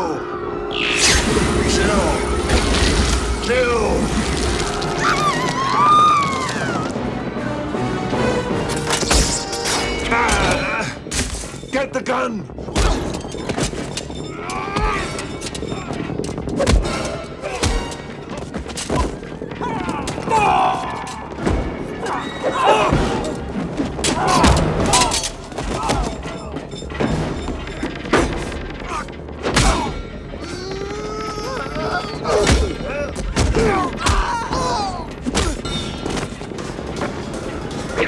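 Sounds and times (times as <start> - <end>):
dramatic film score: 0.0 - 38.0
shouts and screams: 5.0 - 6.9.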